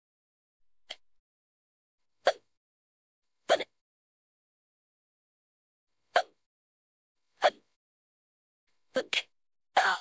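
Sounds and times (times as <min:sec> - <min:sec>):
person hiccuping: 0:02.2 - 0:02.5, 0:06.2 - 0:06.4.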